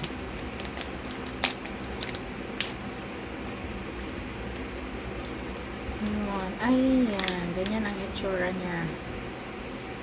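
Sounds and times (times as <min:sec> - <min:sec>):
plastic packet crinkling: 0:00.0 - 0:08.0
low room hum: 0:00.0 - 0:10.0.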